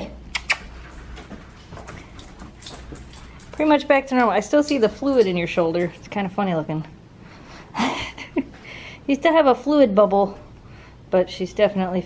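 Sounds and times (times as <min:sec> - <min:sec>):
dog claws clicking on hard floor: 0:00.4 - 0:06.2.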